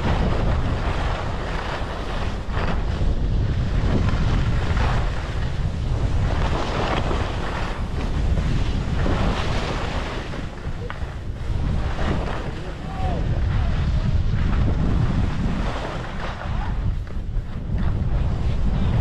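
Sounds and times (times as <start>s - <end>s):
skis sliding on snow: 0.0s - 19.0s
wind buffeting microphone: 0.0s - 19.0s.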